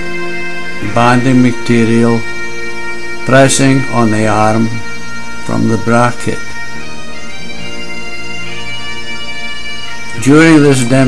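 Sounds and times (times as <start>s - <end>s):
bagpipe music with drones: 0.0s - 11.0s.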